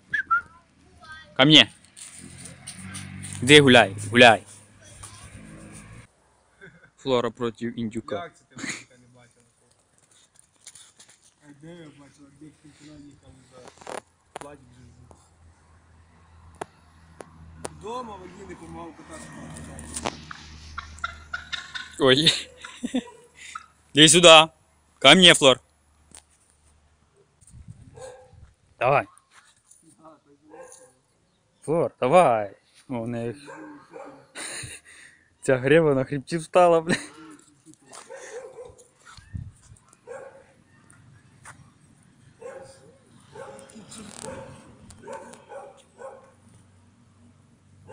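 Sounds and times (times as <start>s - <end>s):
wavering vocal calls: 20.2s - 23.8s.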